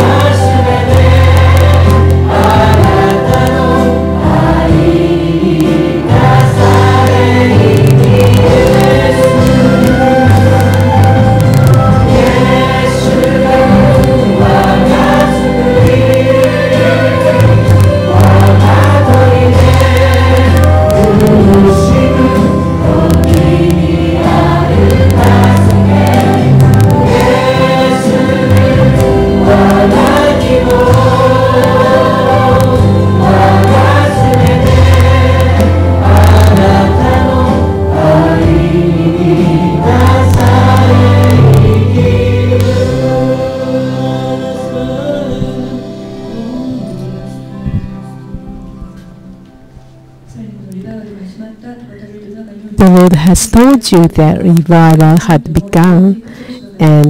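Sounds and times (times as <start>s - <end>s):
sustained bass notes: 0.0s - 50.5s, 52.8s - 56.2s
group singing worship song: 0.0s - 52.2s
acoustic guitar: 0.0s - 57.0s.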